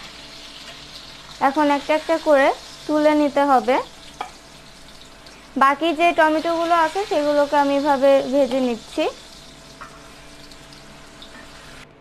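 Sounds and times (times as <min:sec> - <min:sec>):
oil sizzling in a wok: 0:00.0 - 0:12.0.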